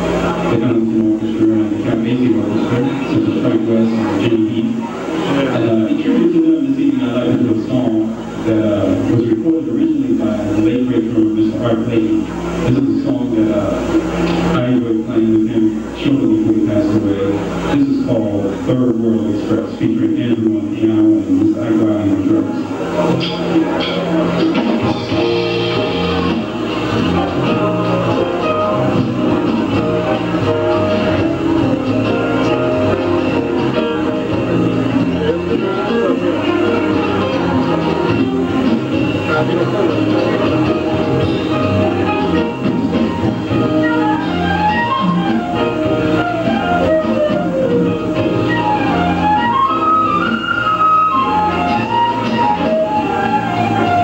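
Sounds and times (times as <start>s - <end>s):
live jazz band playing: 0.0s - 54.0s.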